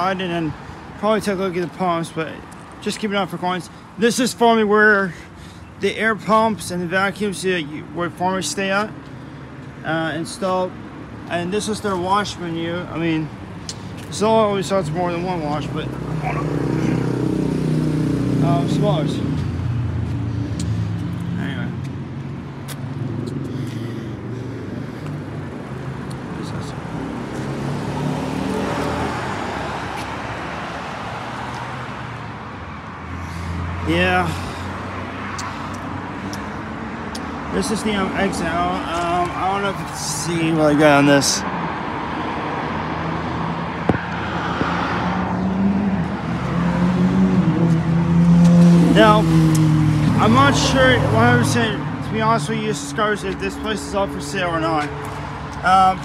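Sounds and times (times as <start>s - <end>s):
road traffic noise: 0.0s - 56.0s
vehicle passing by: 13.9s - 56.0s.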